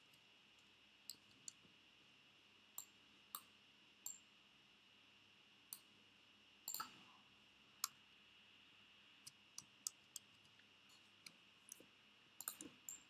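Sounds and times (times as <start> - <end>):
faint high-pitched whine: 0.0 - 13.0
computer mouse clicking: 9.2 - 13.0.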